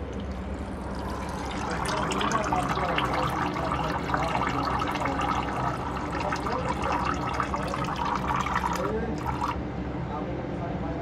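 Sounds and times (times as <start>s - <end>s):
oil stream splashing: 0.0s - 9.6s.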